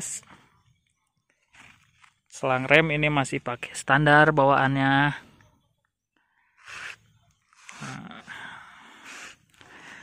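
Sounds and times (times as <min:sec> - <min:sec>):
person breathing: 0:07.8 - 0:10.0.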